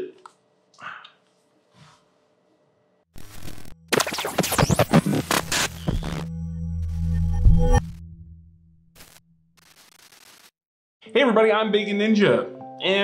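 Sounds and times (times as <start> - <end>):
burst of static: 3.2 - 6.3, 9.0 - 10.6
scratching and crackling with sweeps: 3.2 - 8.2.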